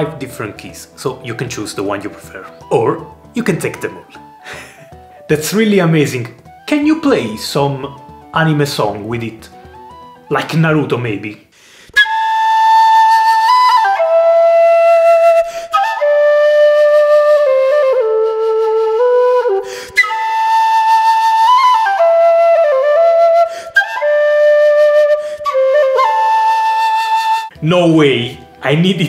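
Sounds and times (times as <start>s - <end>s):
low whistle slow melody: 9.5s - 10.3s, 11.9s - 27.6s.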